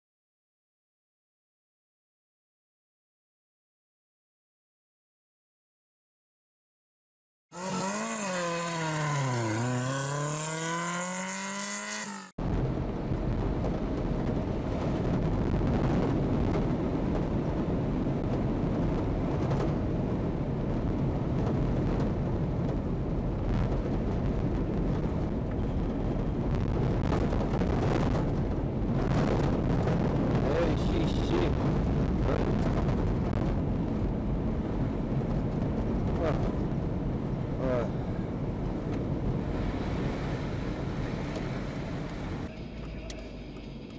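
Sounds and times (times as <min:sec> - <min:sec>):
car engine and tyre noise: 0:07.6 - 0:43.9.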